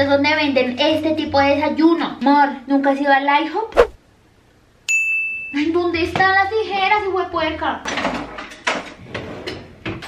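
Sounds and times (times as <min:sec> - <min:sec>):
drawers and cupboards clattering: 0:07.9 - 0:10.0.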